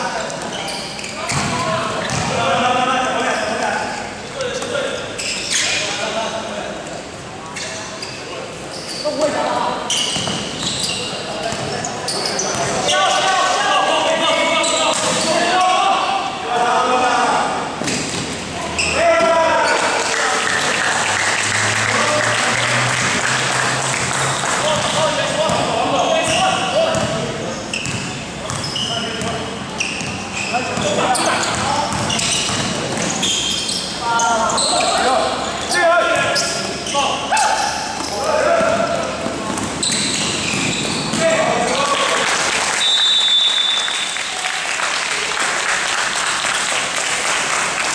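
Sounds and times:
sneakers squeaking: 0:00.0 - 0:06.5, 0:07.4 - 0:13.4, 0:14.1 - 0:16.2, 0:17.8 - 0:20.1, 0:24.0 - 0:41.8
basketball bouncing on floor: 0:01.3 - 0:02.3, 0:26.9 - 0:27.2
basketball dribbling: 0:24.7 - 0:27.2, 0:27.8 - 0:29.4, 0:31.5 - 0:33.2.

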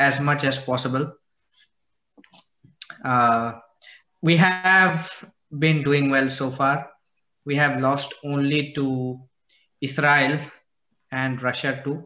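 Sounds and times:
man speaking: 0:00.0 - 0:01.2, 0:02.8 - 0:12.0.

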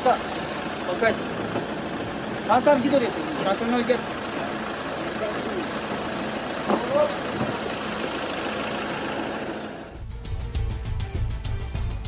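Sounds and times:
vehicle engine idling: 0:00.0 - 0:10.0.

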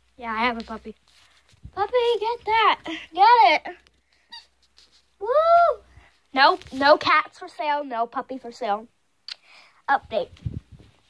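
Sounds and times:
girl exclaiming woo: 0:05.2 - 0:05.8.

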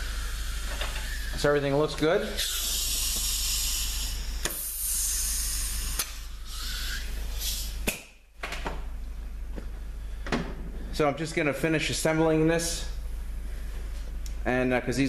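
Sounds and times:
compressed air hissing from nozzle: 0:00.0 - 0:01.5, 0:02.2 - 0:07.9.

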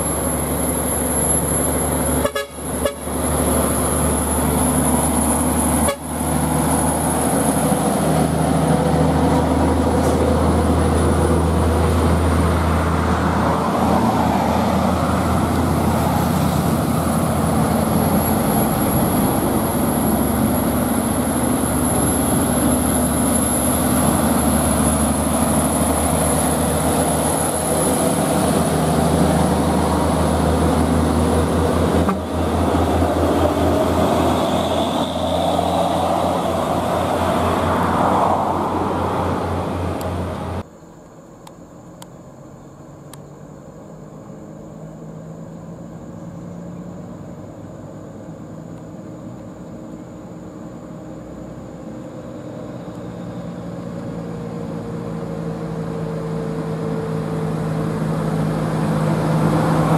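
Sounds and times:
diesel truck engines humming: 0:00.0 - 0:59.9
vehicle horn toots: 0:02.2 - 0:03.2, 0:05.8 - 0:06.2.

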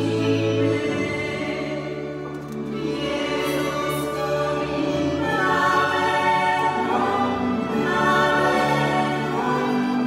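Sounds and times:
violins: 0:00.0 - 0:10.0
women singing together: 0:00.0 - 0:10.0.

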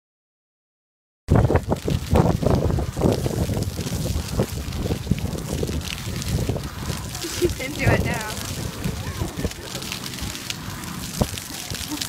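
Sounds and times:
fountain jets spattering water: 0:01.3 - 0:12.0.

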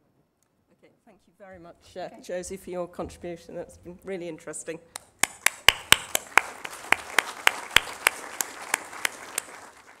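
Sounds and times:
close hands clapping: 0:05.0 - 0:10.0
audience applauding: 0:05.2 - 0:10.0.

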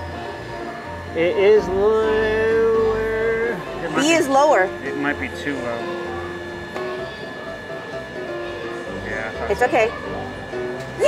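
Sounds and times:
electronic arcade music: 0:00.0 - 0:11.0.

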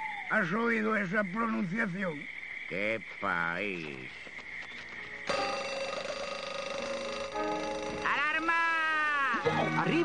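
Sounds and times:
alarm clock bell ringing: 0:05.3 - 0:08.5.

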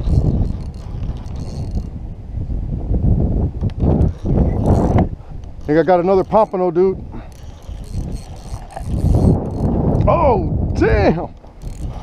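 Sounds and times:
fishing reel gears rattling: 0:00.0 - 0:01.9, 0:04.0 - 0:05.0, 0:05.6 - 0:10.0, 0:11.4 - 0:12.0.

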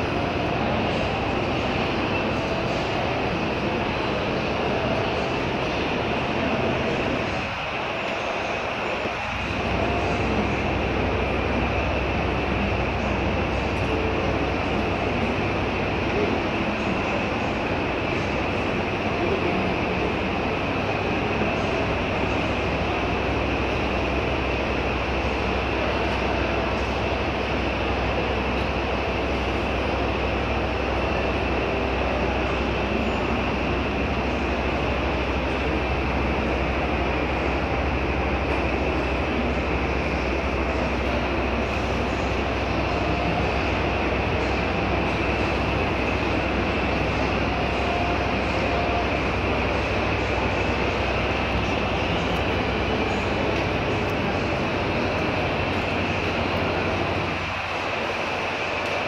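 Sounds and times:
constant low hum: 0:00.0 - 0:59.0.

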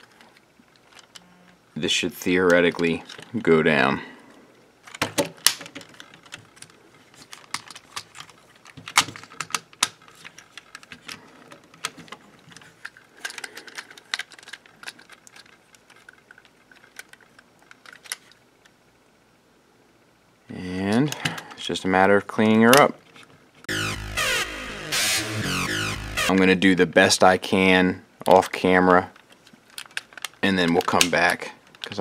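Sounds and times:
plastic toy parts clicking: 0:00.0 - 0:01.3, 0:04.8 - 0:18.4, 0:29.2 - 0:32.0.

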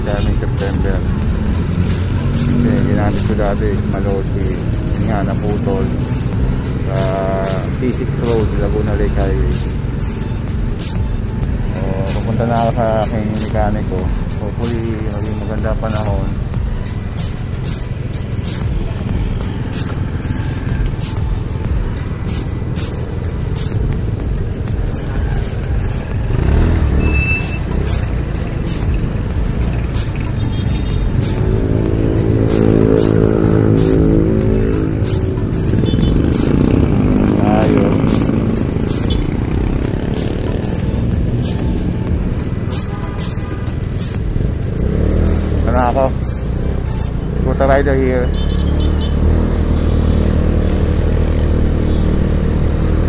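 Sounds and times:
car engine drone: 0:00.0 - 0:53.0
cars passing close by: 0:00.0 - 0:53.0
scooter engine revving: 0:16.4 - 0:47.4.

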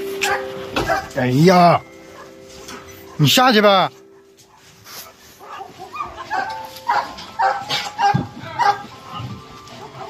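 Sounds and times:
dogs barking and yipping: 0:00.0 - 0:10.0.

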